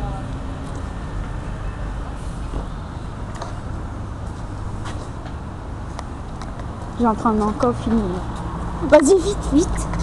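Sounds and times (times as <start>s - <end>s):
tram humming and rumbling: 0.0s - 10.0s.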